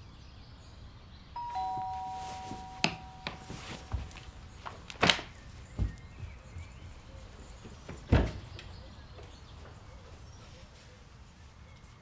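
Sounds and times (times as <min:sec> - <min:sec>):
ding-dong doorbell chime: 0:01.4 - 0:04.3.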